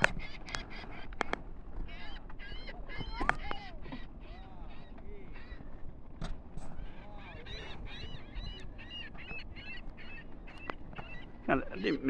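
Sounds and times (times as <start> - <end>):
waterbirds honking: 0.0 - 12.0
wind and water rumble: 0.0 - 12.0.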